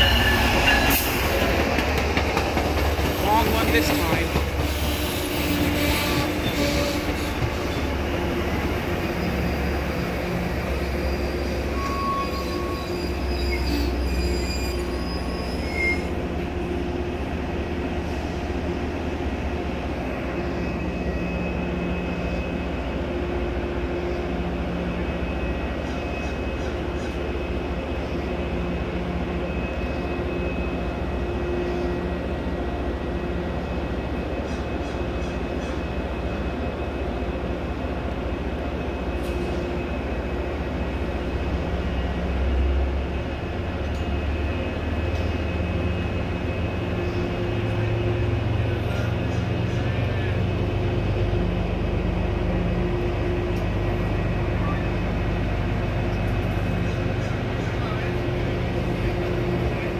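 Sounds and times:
train rumbling past: 0:00.0 - 0:59.9.

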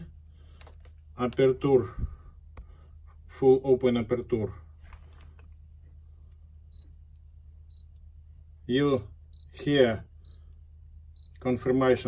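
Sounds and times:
camera focus beep: 0:07.7 - 0:07.9.

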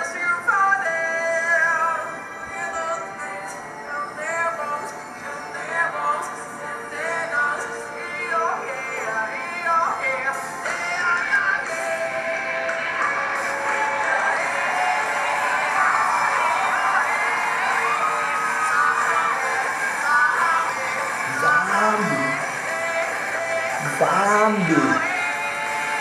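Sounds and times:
person singing: 0:14.0 - 0:26.0.

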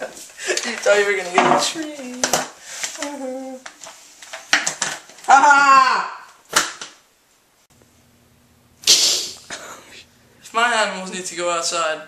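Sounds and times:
low steady hum: 0:07.7 - 0:11.0
loud hiss-like noise burst: 0:08.8 - 0:09.6.

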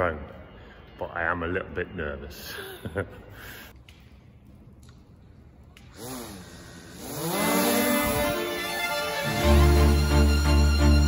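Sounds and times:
drone propeller whine: 0:06.7 - 0:11.0.

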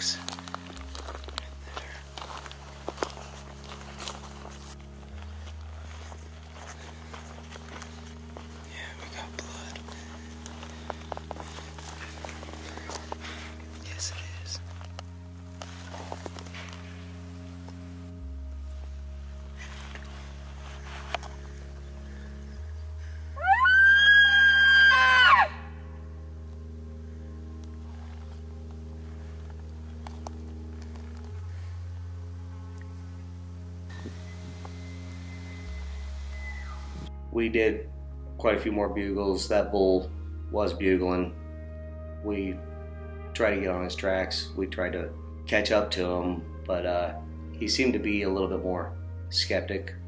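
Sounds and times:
background music with slow chords: 0:00.0 - 0:50.0
elk bugle: 0:23.3 - 0:25.8.

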